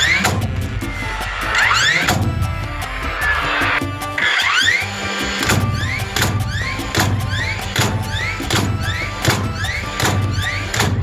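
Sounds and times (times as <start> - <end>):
nail gun whine and strike: 4.2 - 11.0.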